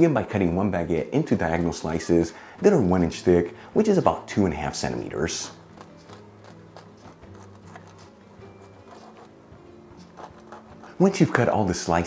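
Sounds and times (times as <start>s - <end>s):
soft background music: 0.0s - 12.0s
bread knife sawing crusty bread: 5.0s - 11.5s.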